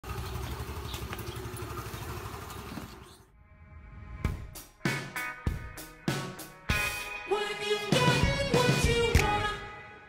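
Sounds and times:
scooter engine idling: 0:00.0 - 0:03.2.

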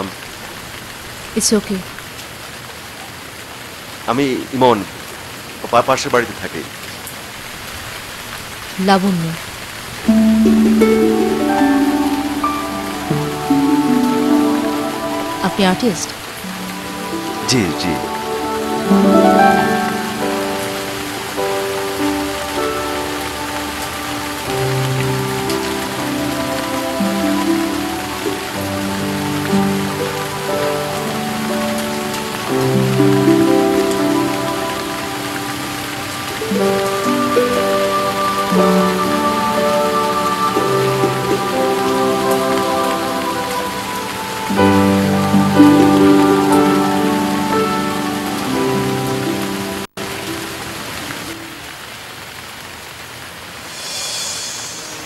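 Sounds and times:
rain falling on paving: 0:00.0 - 0:55.0
slow background music: 0:10.1 - 0:51.4.

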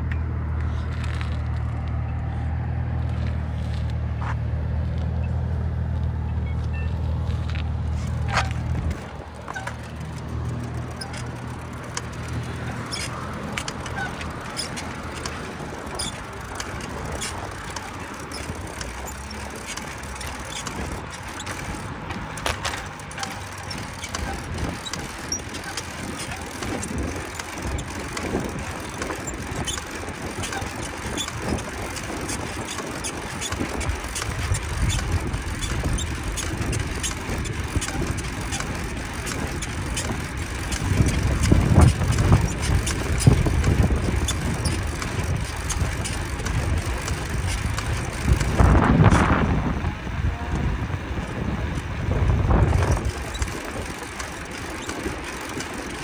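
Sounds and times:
bicycle clicks and rattles: 0:00.0 - 0:56.0
bicycle tyre and road noise: 0:00.0 - 0:56.0
wind rumbling on microphone: 0:07.1 - 0:56.0.

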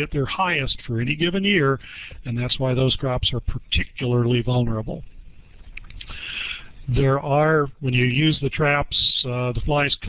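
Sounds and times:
man speaking: 0:00.0 - 0:05.1, 0:06.1 - 0:10.0
low room noise: 0:00.0 - 0:10.0
soft breath-like hiss: 0:06.0 - 0:06.8.

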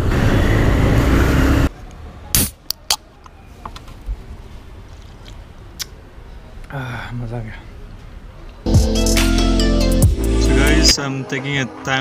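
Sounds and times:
surrounding traffic: 0:00.0 - 0:12.0.

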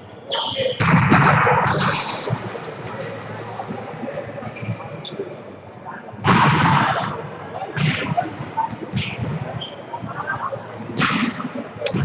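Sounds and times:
gym hall echo: 0:00.0 - 0:12.0
players' voices: 0:00.1 - 0:12.0.

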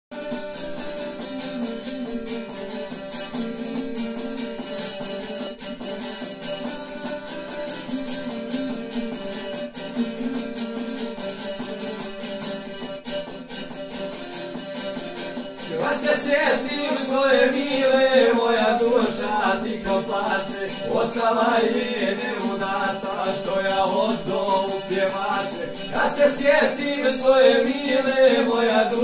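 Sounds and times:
plucked lute melody: 0:00.1 - 0:29.0.

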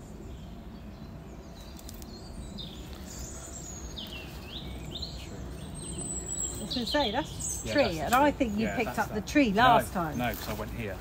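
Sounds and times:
birds chirping: 0:00.0 - 0:11.0
low outdoor background noise: 0:00.0 - 0:11.0.

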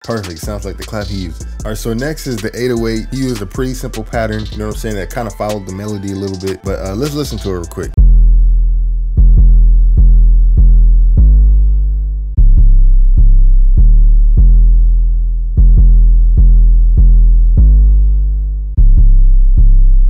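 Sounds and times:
deep sustained bass notes: 0:06.8 - 0:20.0.

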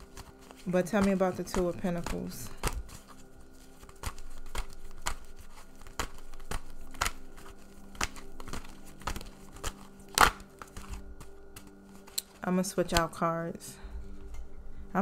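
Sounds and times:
cards being shuffled: 0:00.0 - 0:13.2.

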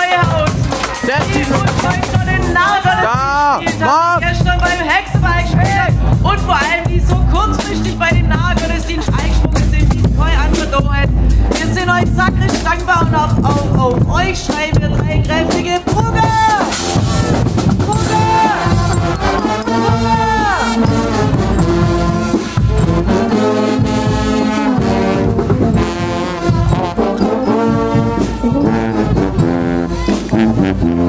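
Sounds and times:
brass band playing loud: 0:00.0 - 0:31.0.

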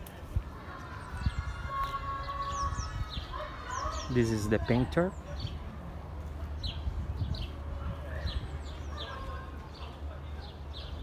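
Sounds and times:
birds chirping: 0:00.0 - 0:11.0
rising bird call: 0:00.9 - 0:04.2.

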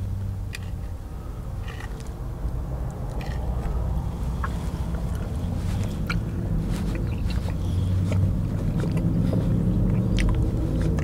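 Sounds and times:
steady low rumble: 0:00.0 - 0:11.0
person chewing with mouth clicks: 0:02.9 - 0:11.0.

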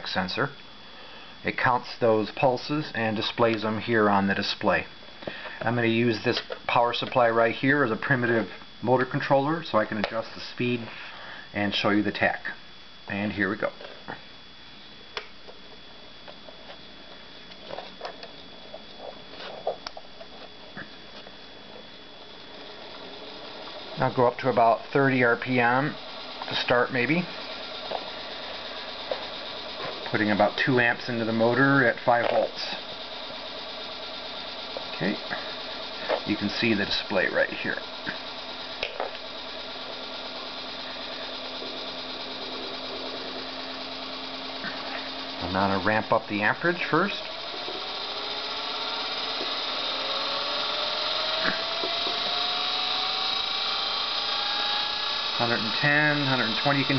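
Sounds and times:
electric motor humming: 0:00.0 - 0:56.9
thin high whine: 0:00.0 - 0:56.9.

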